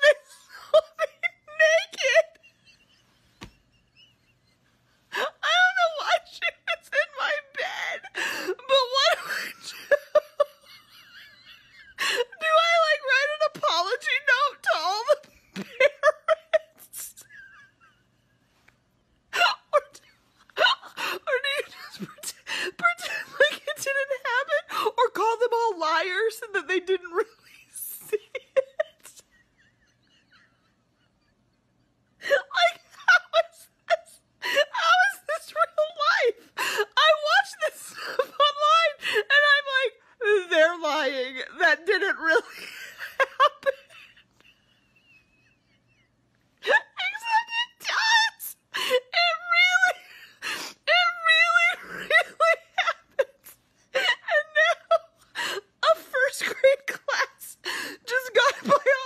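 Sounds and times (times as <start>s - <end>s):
woman laughing: 0.0s - 59.0s.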